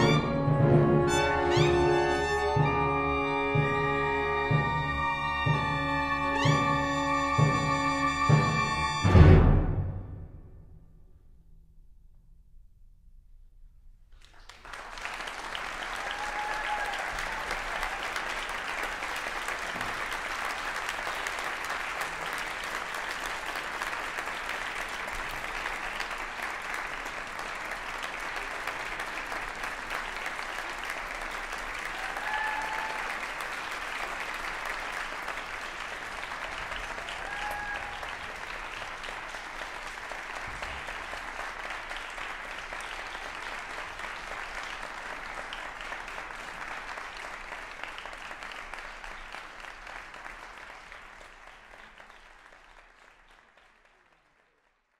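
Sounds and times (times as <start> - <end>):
audience applauding: 14.2 - 54.9
short cheers: 15.9 - 18.3, 31.8 - 33.3, 37.0 - 38.2.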